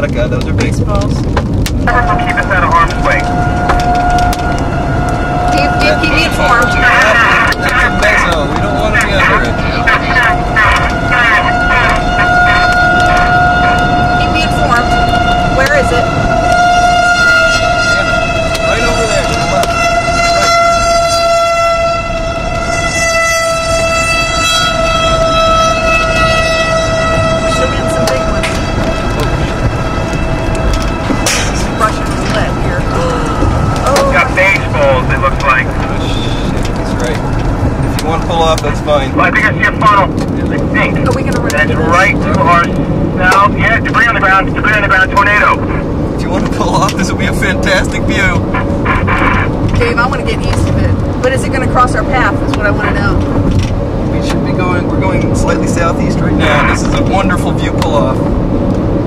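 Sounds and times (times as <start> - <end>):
car road noise: 0.0 - 59.0
warning siren steady pitch: 1.6 - 59.0.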